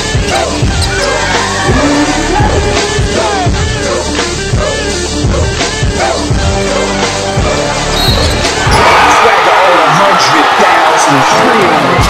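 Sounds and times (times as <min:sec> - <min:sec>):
music with heavy bass beat: 0:00.0 - 0:07.6
crowd shouting and cheering: 0:00.0 - 0:12.0.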